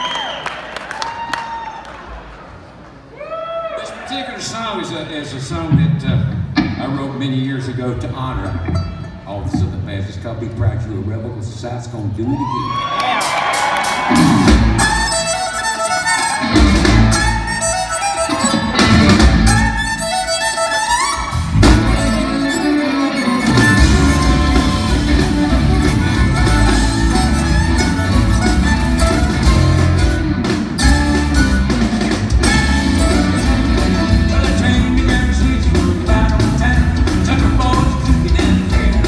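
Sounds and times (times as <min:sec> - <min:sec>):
drums: 0:03.8 - 0:39.0
rock band playing live: 0:05.4 - 0:10.6, 0:13.2 - 0:39.0
bass: 0:12.3 - 0:39.0
guitar licks with slides: 0:14.1 - 0:39.0.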